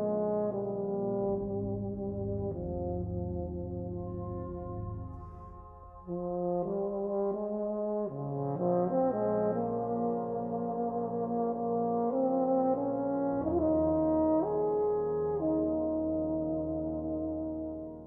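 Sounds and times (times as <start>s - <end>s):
brass band playing chords: 0.3s - 14.7s
deep bass note: 1.3s - 6.7s.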